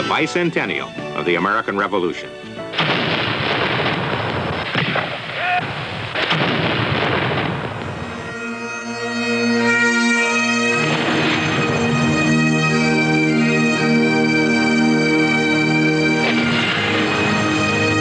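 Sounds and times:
bagpipes playing slow tune: 0:00.0 - 0:02.8, 0:07.7 - 0:18.0
cannon booms with rumble: 0:02.7 - 0:08.1.

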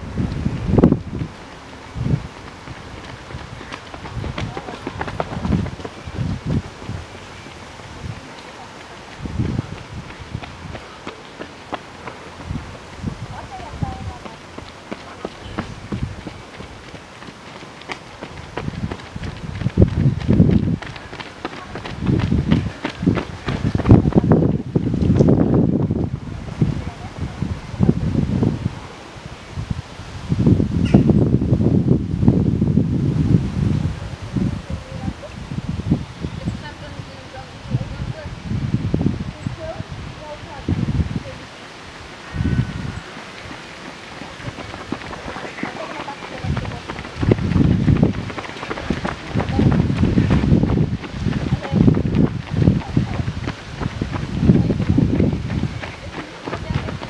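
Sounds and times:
wind buffeting microphone: 0:00.0 - 0:57.0
runners' footsteps on asphalt: 0:00.1 - 0:28.6, 0:42.1 - 0:57.0.

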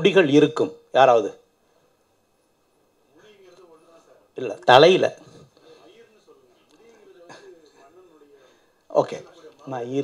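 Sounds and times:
faint background speech: 0:02.7 - 0:10.0.

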